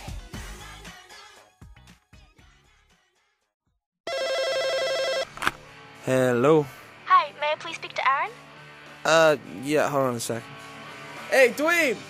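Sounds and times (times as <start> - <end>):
telephone ringing: 4.1 - 5.4.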